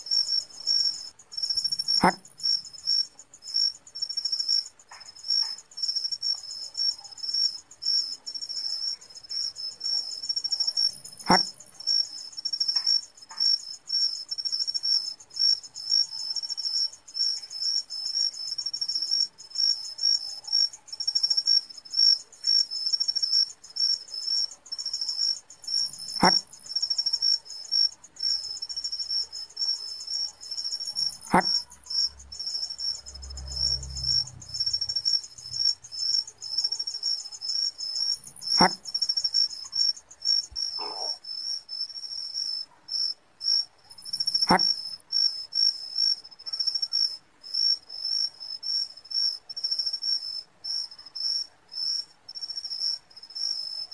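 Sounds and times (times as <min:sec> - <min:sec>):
crickets chirping: 0:00.0 - 0:53.9.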